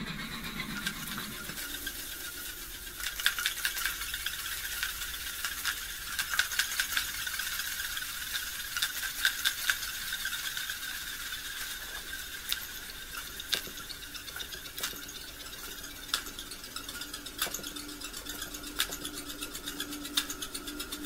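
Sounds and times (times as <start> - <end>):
steady hiss: 0.0 - 21.0
dry rattling clicks: 0.6 - 21.0.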